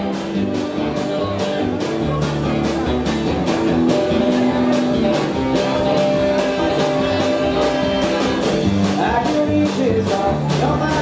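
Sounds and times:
live country-rock band playing: 0.0 - 11.0.

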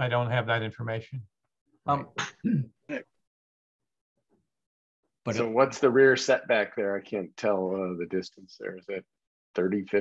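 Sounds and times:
person clearing throat: 2.2 - 3.1.

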